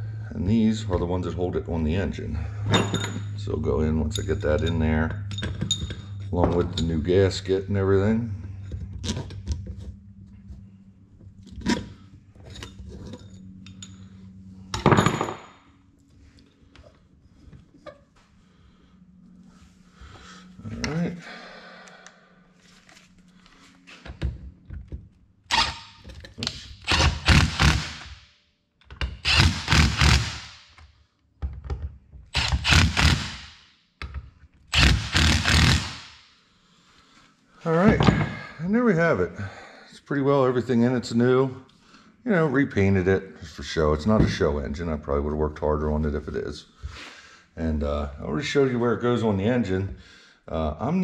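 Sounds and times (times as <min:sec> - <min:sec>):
steady low hum: 0:00.0 - 0:28.2
impact driver running bolts: 0:25.5 - 0:28.1, 0:29.0 - 0:30.5, 0:32.3 - 0:33.5, 0:34.7 - 0:36.0.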